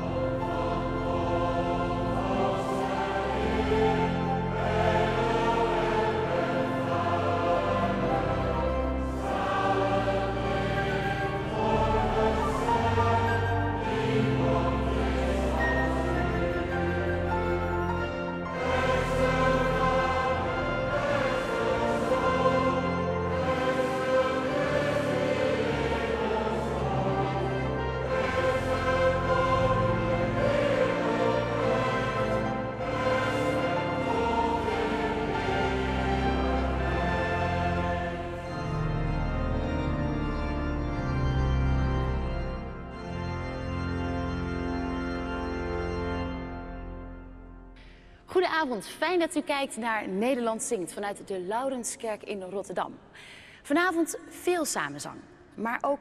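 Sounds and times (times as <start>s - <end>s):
congregation singing a hymn: 0.0s - 47.2s
pipe organ: 0.0s - 48.2s.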